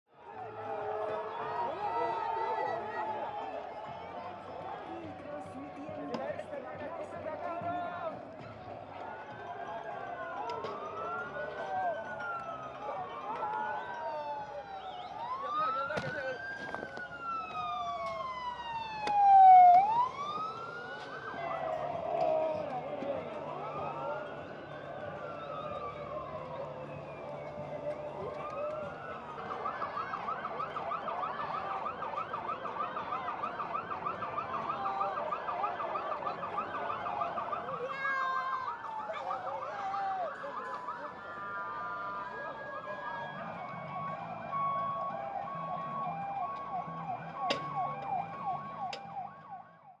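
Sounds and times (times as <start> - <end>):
crowd and street noise: 0.1 - 50.0
police sirens: 0.1 - 50.0.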